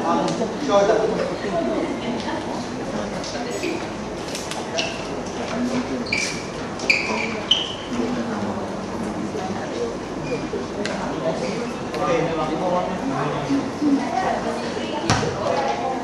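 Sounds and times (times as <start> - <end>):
crowd talking in a hall: 0.0 - 16.0
short high squeaks: 6.0 - 8.0.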